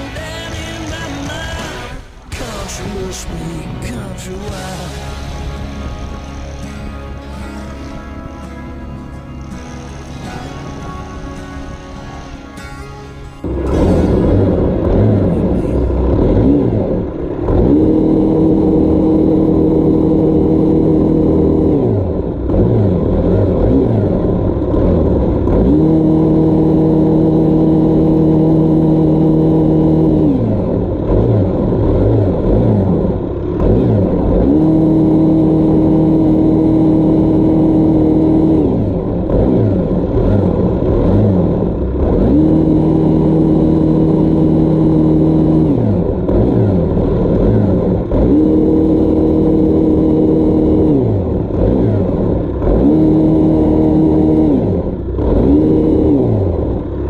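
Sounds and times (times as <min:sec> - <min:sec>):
small engine running: 0:04.4 - 0:57.0.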